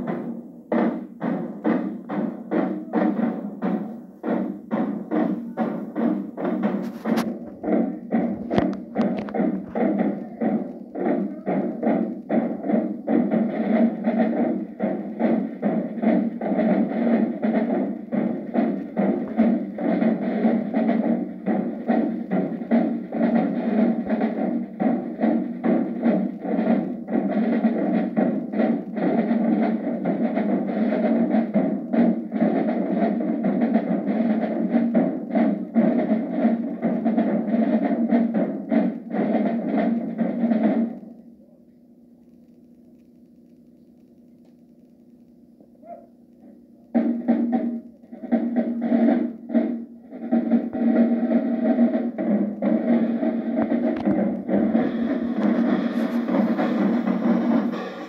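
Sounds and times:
cymbals: 0.0 - 41.3, 45.8 - 58.0
faint hum: 0.0 - 58.0
marching snare and bass drums: 0.0 - 58.0.

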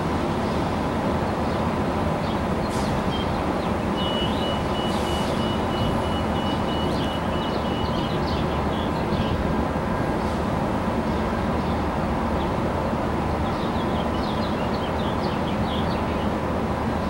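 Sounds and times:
train idling rumble and hum: 0.0 - 17.0.

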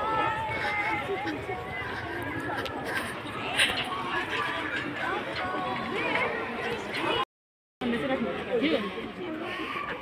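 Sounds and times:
voices outdoors: 0.0 - 10.0.

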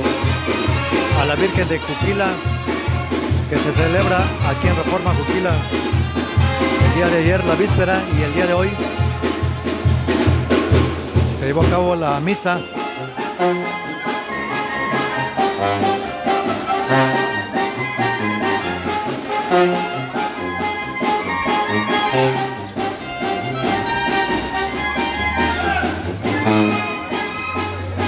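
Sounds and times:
brass band playing: 0.0 - 28.0
drum beats: 0.0 - 28.0.

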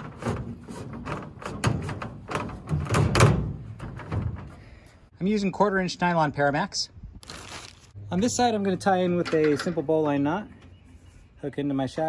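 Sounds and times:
rope knocking and scraping on ladder: 0.0 - 4.6.

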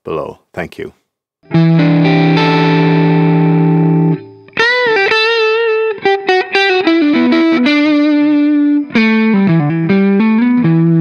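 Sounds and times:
overdriven electric guitar chord: 1.4 - 11.0.

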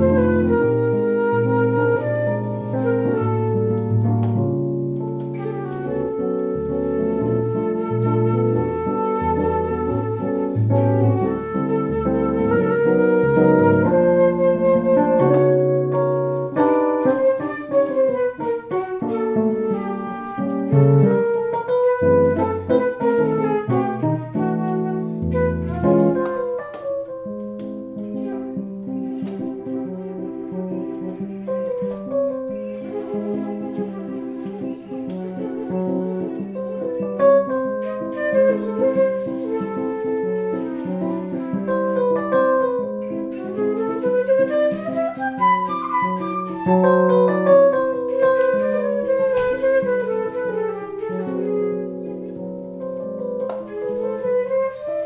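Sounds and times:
flute melody: 0.0 - 55.0.

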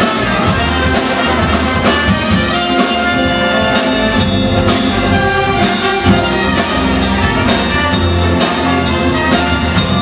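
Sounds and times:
brass section playing chords: 0.0 - 10.0
drum kit: 0.0 - 10.0
electric bass: 0.0 - 10.0.

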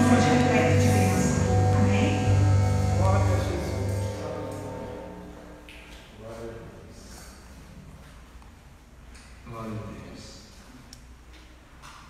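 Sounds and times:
worship band music: 0.0 - 5.9.

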